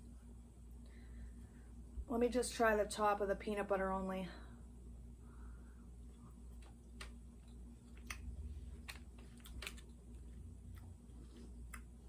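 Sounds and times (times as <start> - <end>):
low steady hum: 0.0 - 12.0
closed-mouth chewing: 6.0 - 12.0
soft mouth clicks: 6.5 - 9.8.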